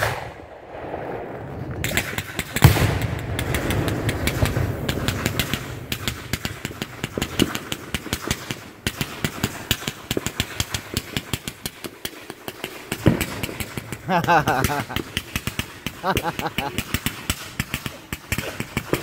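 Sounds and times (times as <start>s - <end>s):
fireworks launches and bangs: 0.0s - 19.0s
fireworks sharp cracks: 0.0s - 19.0s.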